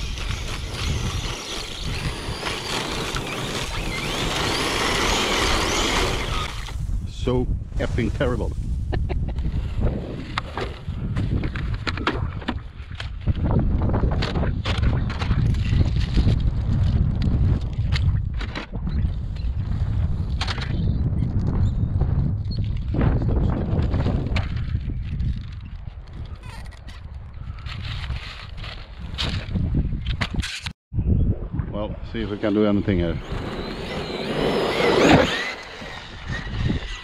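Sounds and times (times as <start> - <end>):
wind rumble on microphone: 0.0 - 37.0.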